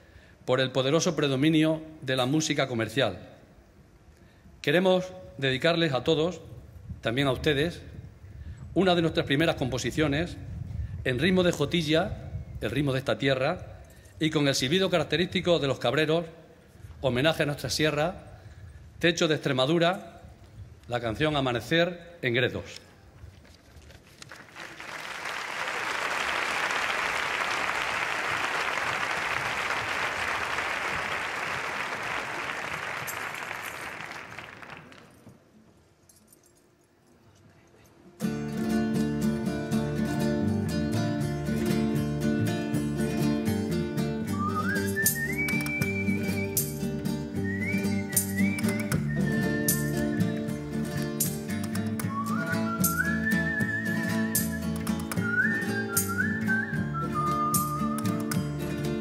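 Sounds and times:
audience applause: 24.2s - 35.2s
strummed guitars and plucked strings: 38.2s - 59.0s
whistle gliding upward: 44.3s - 46.8s, 52.0s - 58.1s.

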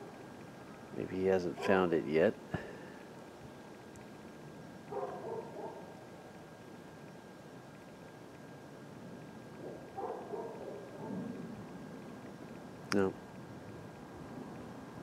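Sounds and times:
thin steady whine: 0.0s - 15.0s.

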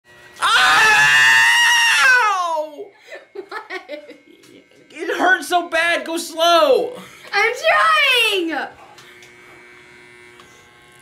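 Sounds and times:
hair clippers: 0.1s - 11.0s
man yelling: 0.4s - 2.9s
people talking: 5.0s - 8.8s.

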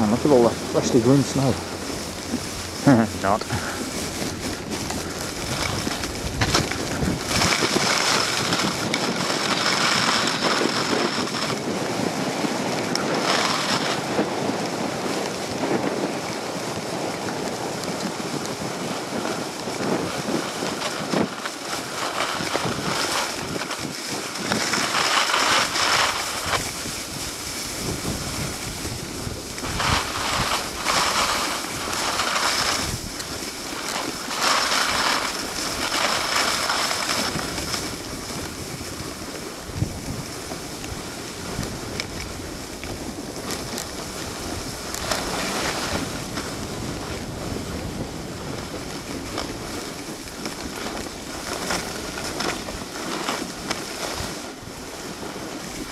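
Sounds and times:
snowblades carving on snow: 0.0s - 55.9s
wind buffeting microphone: 0.0s - 55.9s.

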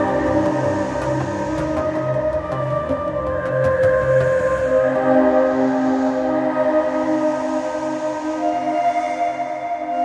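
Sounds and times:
ambient synthesizer pads: 0.0s - 10.0s.

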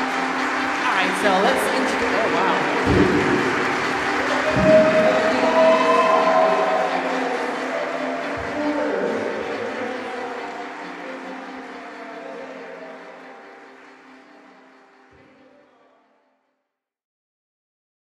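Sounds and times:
audience applause: 0.0s - 15.1s
sustained music: 0.0s - 15.5s.

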